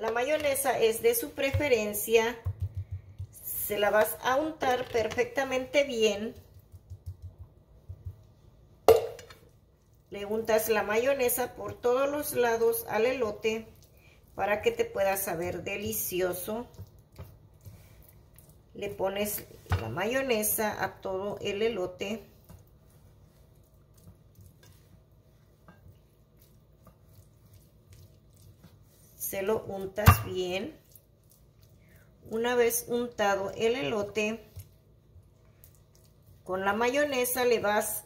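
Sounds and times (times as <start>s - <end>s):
low steady hum: 0.0s - 38.0s
pastry brush strokes: 21.9s - 32.9s.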